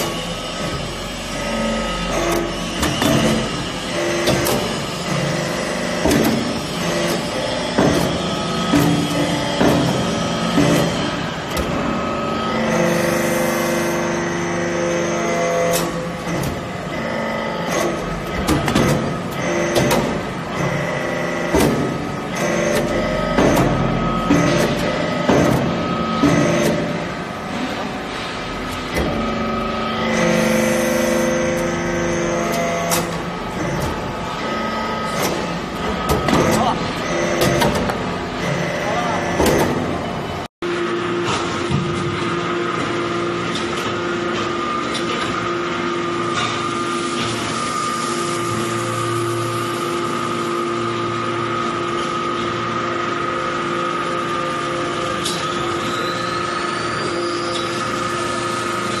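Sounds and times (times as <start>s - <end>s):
hydraulic press humming and whining: 0.0s - 59.0s.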